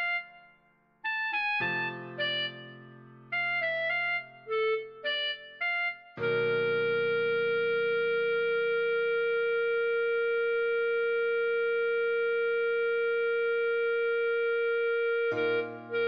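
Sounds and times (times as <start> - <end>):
clarinet holding long note: 0.0 - 16.0.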